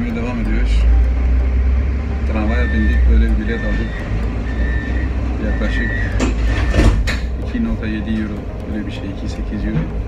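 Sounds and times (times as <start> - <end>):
tram rumbling: 0.0 - 10.0.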